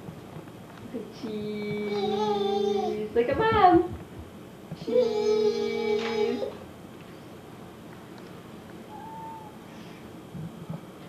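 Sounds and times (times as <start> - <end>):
toddler singing vowels: 1.6 - 3.0, 4.8 - 6.5.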